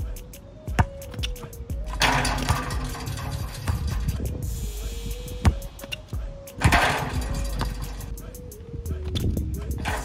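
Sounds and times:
music with steady beat: 0:00.0 - 0:10.0.

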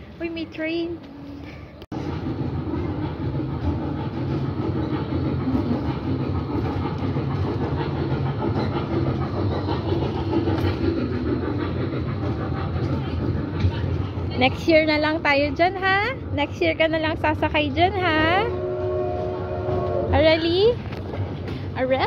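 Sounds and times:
ride-on road train running: 0:00.0 - 0:22.0.

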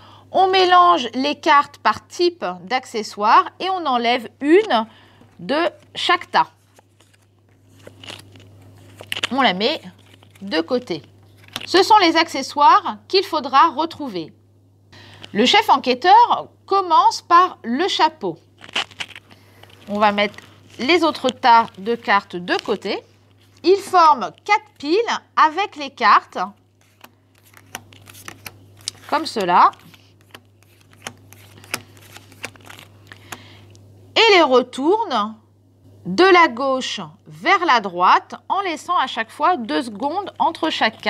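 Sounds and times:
cardboard cards scraping and clicking: 0:06.6 - 0:10.6, 0:11.3 - 0:11.7, 0:18.6 - 0:24.0, 0:26.8 - 0:33.4.

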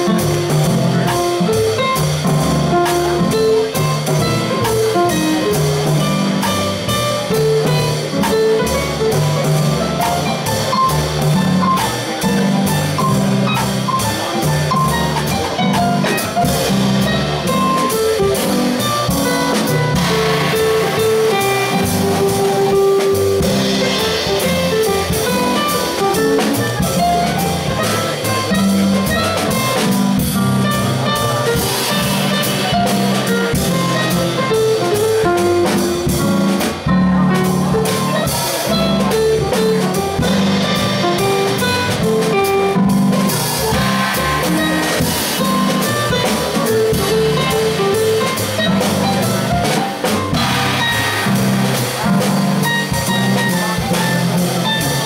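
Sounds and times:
drum kit with cymbals: 0:00.0 - 0:55.0
upright bass: 0:00.0 - 0:55.0
electric keyboard: 0:37.8 - 0:52.0.

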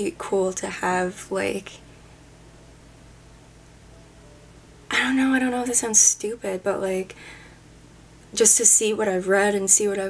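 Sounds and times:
woman speaking: 0:00.0 - 0:01.8, 0:04.9 - 0:07.2, 0:08.3 - 0:10.0
faint steady low hum: 0:00.0 - 0:10.0.

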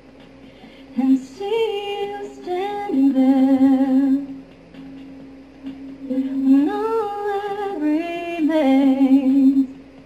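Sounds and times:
woman singing a slow ballad: 0:00.9 - 0:04.4, 0:06.0 - 0:09.8.

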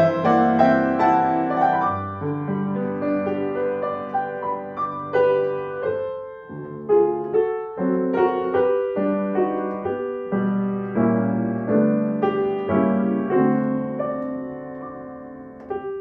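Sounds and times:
grand piano playing chords: 0:00.0 - 0:16.0.

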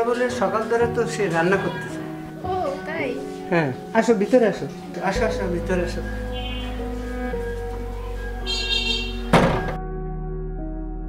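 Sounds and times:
background music sustained tones: 0:00.0 - 0:11.0
wooden door shutting thud: 0:09.2 - 0:09.8.

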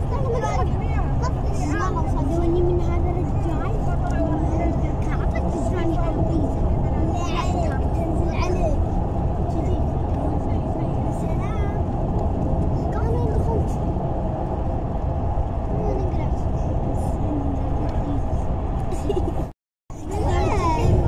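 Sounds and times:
faint voices talking: 0:00.0 - 0:18.9, 0:19.9 - 0:21.0
road and engine rumble: 0:00.0 - 0:21.0.

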